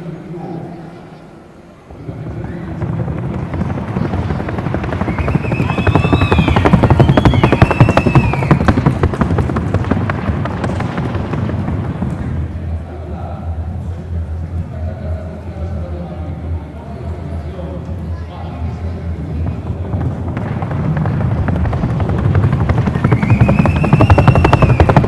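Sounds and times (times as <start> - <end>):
hooves drumming on wooden board: 2.8 - 12.2, 19.5 - 25.0
whistle-like rising and falling tones: 4.9 - 8.9, 22.8 - 25.0.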